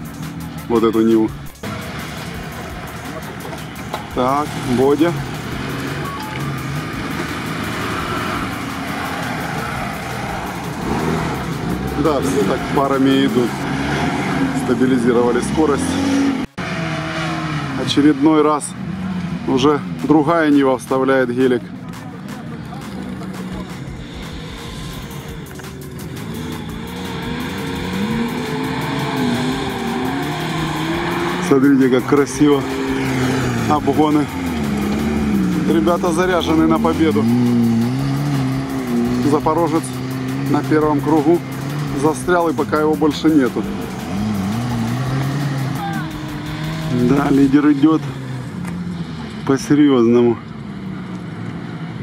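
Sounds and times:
off-road vehicle engines running: 0.0s - 52.0s.

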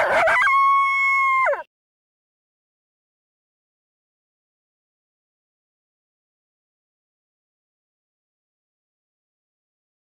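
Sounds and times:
animal call: 0.0s - 1.7s.

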